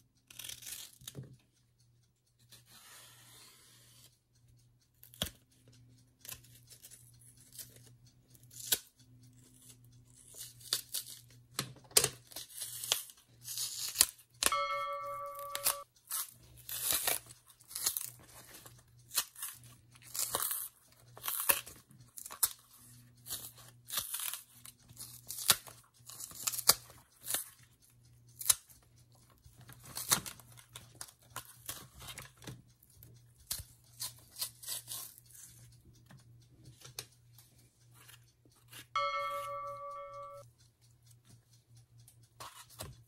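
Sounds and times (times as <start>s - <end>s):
peel tearing by hand: 0.3s - 1.2s, 8.5s - 8.9s, 12.3s - 14.2s, 15.6s - 18.1s, 19.1s - 22.6s, 23.3s - 27.5s, 28.4s - 28.6s, 33.5s - 35.5s
steady pitched tone: 14.5s - 15.8s, 39.0s - 40.4s.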